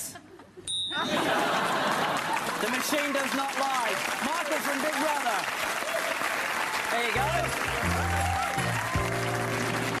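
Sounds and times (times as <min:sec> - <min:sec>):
audience applauding: 0:01.3 - 0:10.0.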